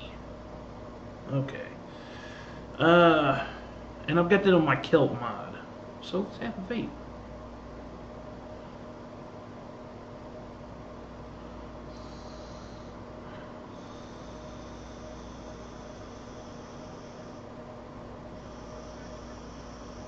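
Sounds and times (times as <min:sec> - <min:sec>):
steady low hum: 0:00.0 - 0:20.0
air hissing through atomizer: 0:11.8 - 0:13.0, 0:13.7 - 0:17.6, 0:18.3 - 0:20.0.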